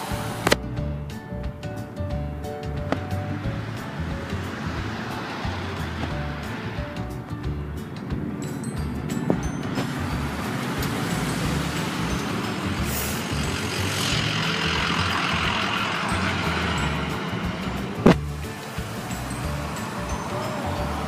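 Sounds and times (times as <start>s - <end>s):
pickup truck passing: 0.0s - 21.0s
road traffic passing: 0.0s - 21.0s.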